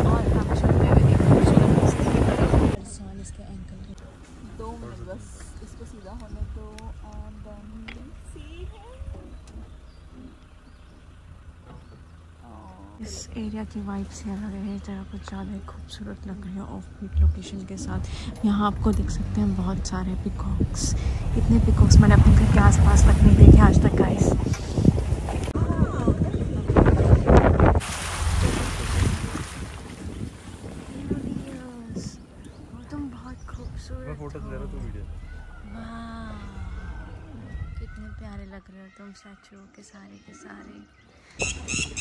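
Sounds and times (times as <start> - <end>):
wind buffeting microphone: 0.0 - 10.9, 13.3 - 38.7
steady low rumble: 0.0 - 38.8.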